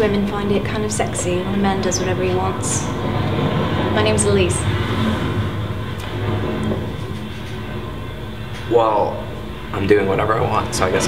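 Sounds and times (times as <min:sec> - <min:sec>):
train carriage rumbling: 0:00.0 - 0:11.0.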